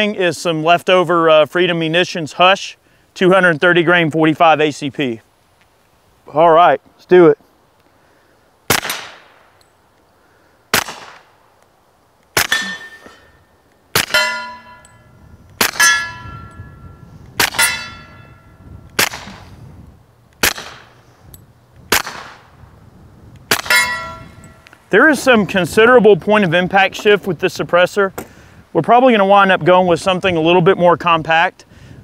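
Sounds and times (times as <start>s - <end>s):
suppressed pistol shots: 8.7s - 9.5s, 10.7s - 11.3s, 12.4s - 13.0s, 13.9s - 14.4s, 15.6s - 16.1s, 17.4s - 17.8s, 18.9s - 19.5s, 20.4s - 21.0s, 21.9s - 22.5s, 23.5s - 24.2s
bullets clanging on steel targets: 12.4s - 13.3s, 14.0s - 19.3s, 23.5s - 24.7s.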